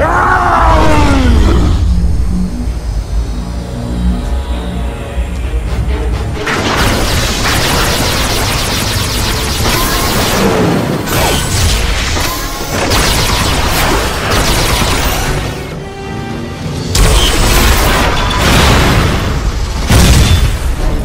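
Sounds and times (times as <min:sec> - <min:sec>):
dramatic orchestral score: 0:00.0 - 0:21.0.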